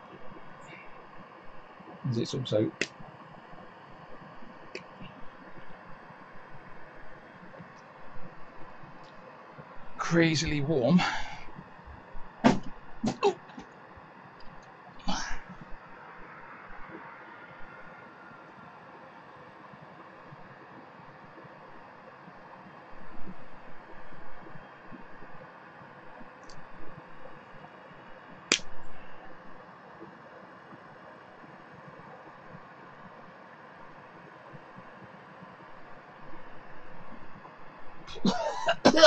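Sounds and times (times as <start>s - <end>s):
sharp snap: 28.5s - 28.7s.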